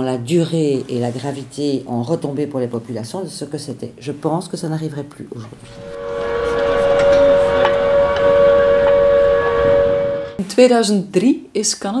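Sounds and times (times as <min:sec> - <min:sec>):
low rumble: 0:05.6 - 0:10.4
two-note horn tone: 0:05.6 - 0:10.4.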